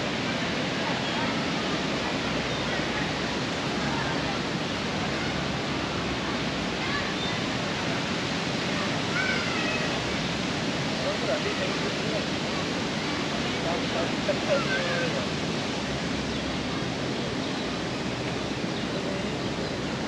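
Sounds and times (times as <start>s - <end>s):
faint distant voices: 0.0s - 20.0s
rushing outdoor ambience: 0.0s - 20.0s.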